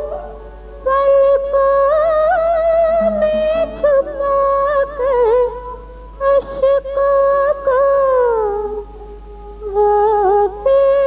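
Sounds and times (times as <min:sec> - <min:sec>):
woman singing a long note: 0:03.0 - 0:05.5.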